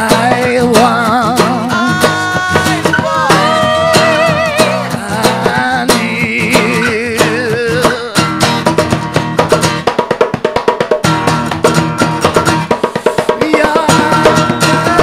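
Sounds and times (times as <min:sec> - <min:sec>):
drums: 0:00.0 - 0:15.0
plucked guitar: 0:00.0 - 0:15.0.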